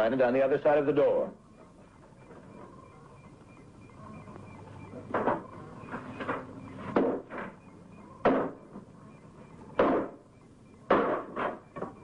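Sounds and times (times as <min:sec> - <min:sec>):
faint steady hum: 0:00.0 - 0:12.0
banging and rattling wooden door: 0:10.8 - 0:12.0.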